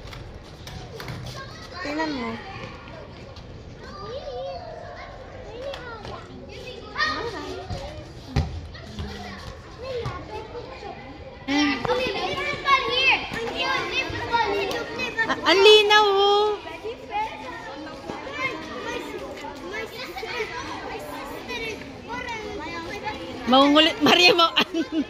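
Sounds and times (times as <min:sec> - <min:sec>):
adults talking: 0:00.6 - 0:25.0.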